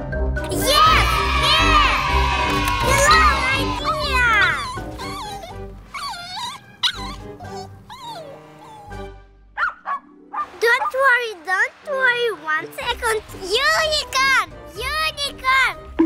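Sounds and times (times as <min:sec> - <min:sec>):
background music: 0:00.0 - 0:16.0
small dog whimpering and yipping: 0:04.3 - 0:09.1.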